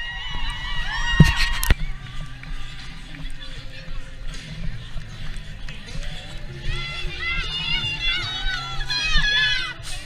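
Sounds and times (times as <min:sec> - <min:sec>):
crowd voices: 0:00.0 - 0:10.0
low microphone rumble: 0:00.0 - 0:10.0
music: 0:00.0 - 0:10.0.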